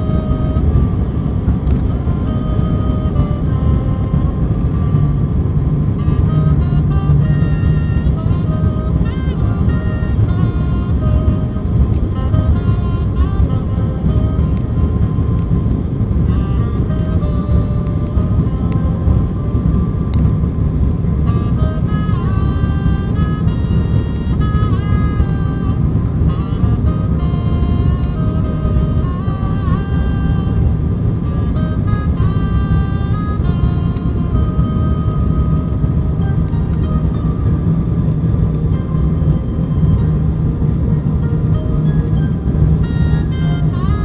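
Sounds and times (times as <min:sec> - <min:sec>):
aircraft cabin drone: 0:00.0 - 0:44.0
music melody: 0:00.0 - 0:44.0.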